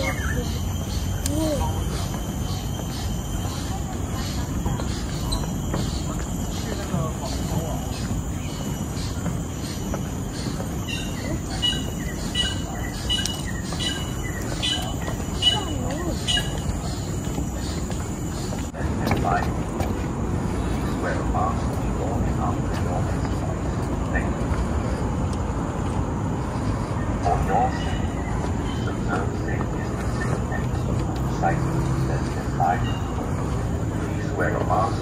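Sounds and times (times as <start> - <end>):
faint indistinct voices: 0.0 - 25.2
outdoor rumble: 0.0 - 35.0.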